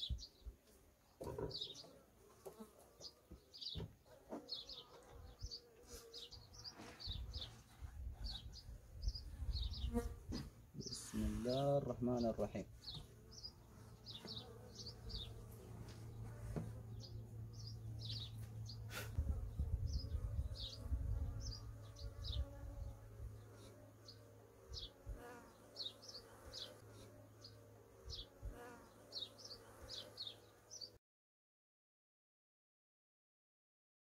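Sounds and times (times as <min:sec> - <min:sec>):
small birds chirping: 0:00.0 - 0:31.0
honeybees buzzing: 0:01.2 - 0:30.9.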